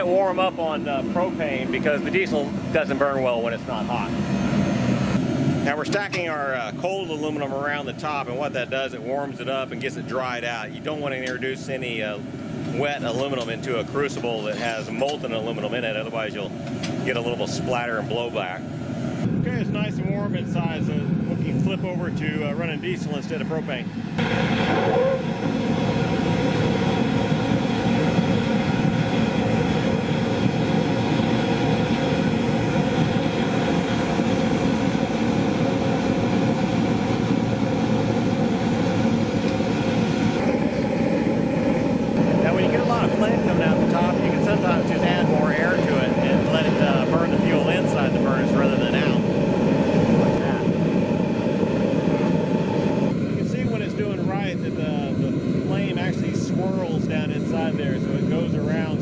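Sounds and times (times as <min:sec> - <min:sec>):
blower motor whine: 0:00.0 - 0:59.0
burner flame roaring: 0:00.0 - 0:59.0.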